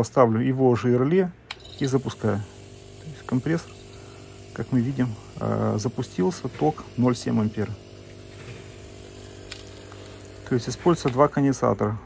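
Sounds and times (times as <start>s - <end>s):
refrigerator compressor humming: 1.2s - 12.0s.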